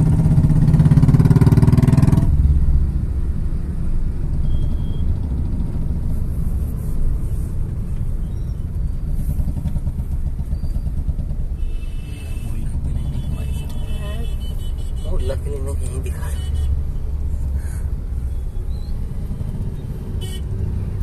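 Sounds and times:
idling traffic rumble: 0.0 - 21.0.

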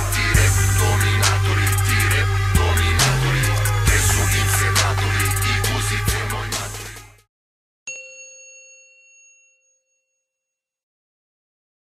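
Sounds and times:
hip-hop track: 0.0 - 7.3
bright bell-like chime: 7.9 - 10.8.

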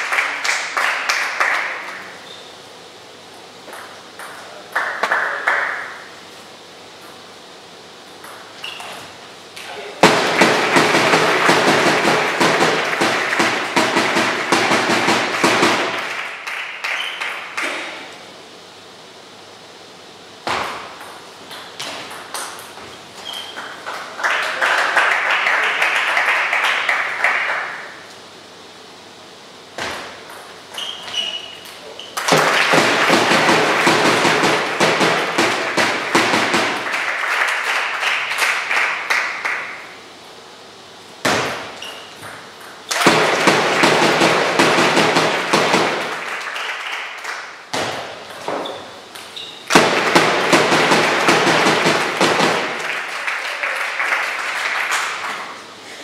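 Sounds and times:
crowd clapping and shouting: 0.0 - 2.2, 4.8 - 6.0, 10.0 - 17.8, 23.8 - 28.0, 32.2 - 40.0, 42.9 - 47.7, 49.7 - 55.6.

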